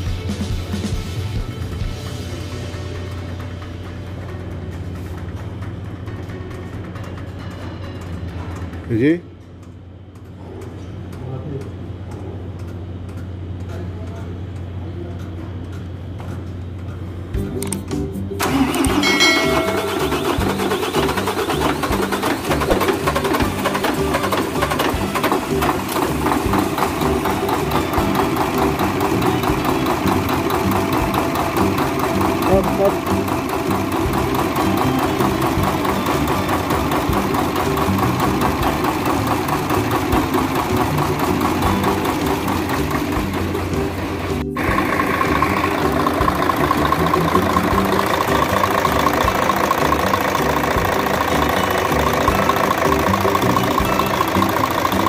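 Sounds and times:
diesel engine starting and idling: 0.0s - 55.0s.

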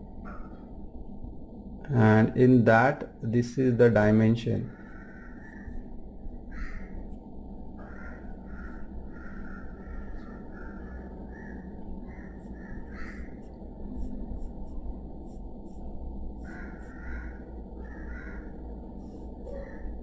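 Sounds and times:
low background hum: 0.0s - 20.0s
pencil scratching on paper: 12.3s - 17.1s, 19.0s - 19.6s.

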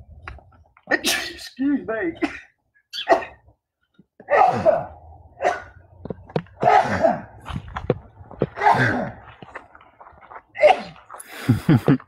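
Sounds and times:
man sneezing: 0.9s - 1.5s, 6.6s - 7.3s.

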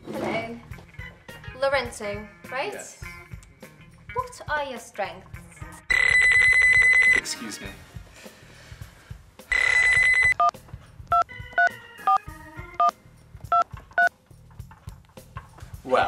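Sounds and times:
keypad beeps: 5.9s - 7.2s, 9.5s - 10.5s
phone alarm bell ringing: 5.9s - 7.2s, 9.5s - 10.5s.

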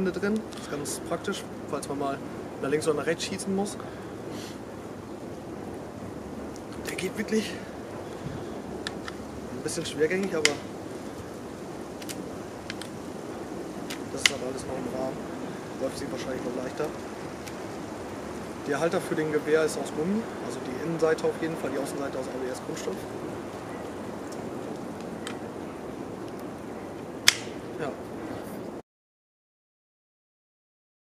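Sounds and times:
background hiss: 0.0s - 28.8s
outdoor background noise: 0.0s - 28.8s
faint clicks: 8.8s - 9.2s, 9.8s - 11.3s, 12.0s - 13.0s, 22.9s - 25.4s
tripod mount clicking: 8.8s - 9.2s, 27.2s - 27.5s.

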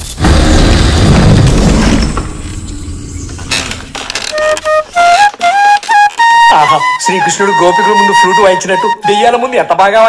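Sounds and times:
loud low boom: 0.0s - 3.8s
bamboo flute notes: 4.2s - 9.7s.

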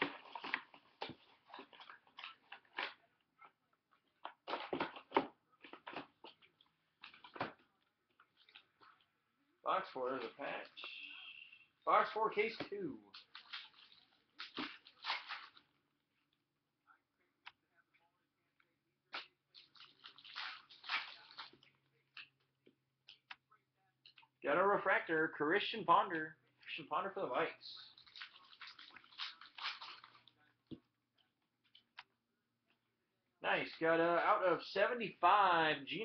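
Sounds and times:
card packaging crinkling: 19.5s - 21.7s, 27.8s - 30.4s.

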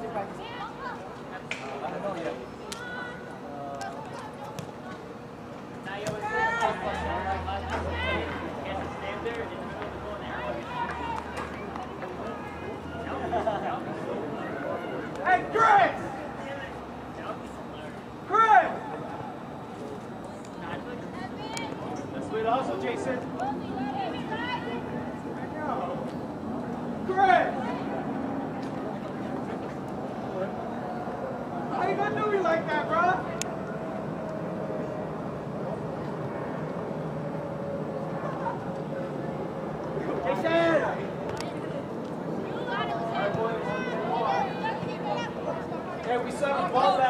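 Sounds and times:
people calling out: 23.3s - 25.3s.

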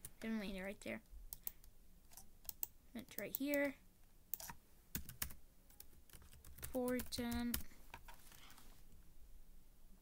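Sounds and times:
mouse clicks: 1.0s - 3.7s
computer keyboard keystrokes: 4.4s - 8.1s.

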